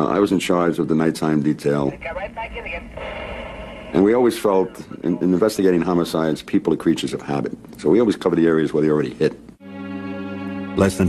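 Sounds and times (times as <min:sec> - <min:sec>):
radio noise: 0:01.9 - 0:05.6
narration voice: 0:03.9 - 0:07.3, 0:10.8 - 0:11.0.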